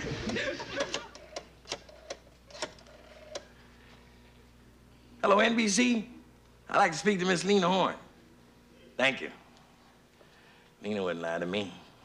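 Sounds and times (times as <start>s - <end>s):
rotary telephone dial clicks: 0.8s - 3.5s.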